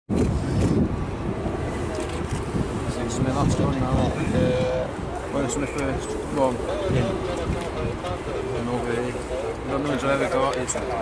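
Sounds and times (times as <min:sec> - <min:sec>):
jet engines rumbling: 0:00.1 - 0:11.0.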